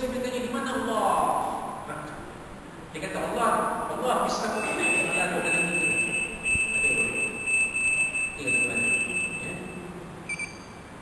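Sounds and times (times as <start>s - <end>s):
high-pitched electronic whine: 4.5s - 9.9s.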